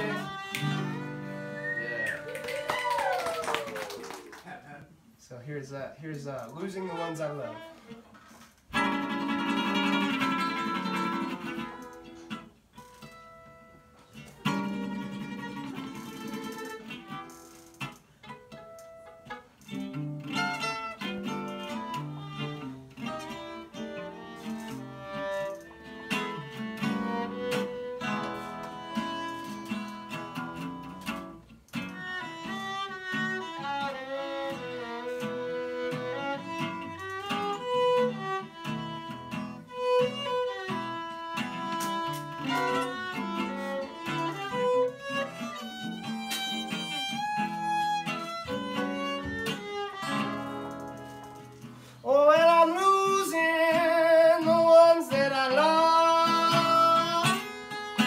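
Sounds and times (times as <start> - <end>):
acoustic guitar strumming: 0.0 - 2.4, 8.7 - 58.0
fiddle melody: 0.0 - 3.2, 6.0 - 58.0.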